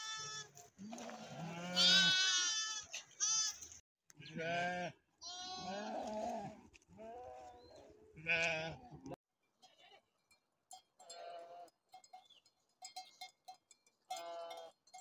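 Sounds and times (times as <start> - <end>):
sheep bleating: 0.0 - 7.6, 8.2 - 10.0.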